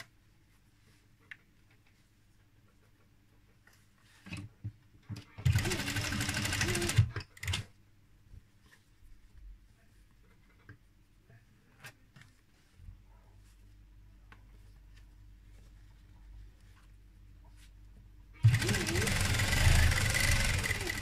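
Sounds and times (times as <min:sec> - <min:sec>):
sewing machine stitching: 0:05.4 - 0:07.7, 0:18.4 - 0:21.0.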